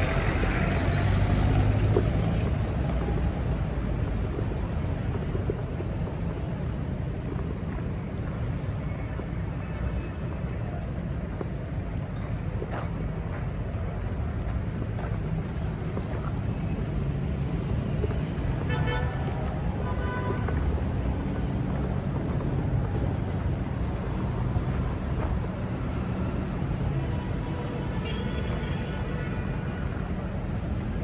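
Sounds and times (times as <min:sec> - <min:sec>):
road traffic rumble: 0:00.0 - 0:31.0.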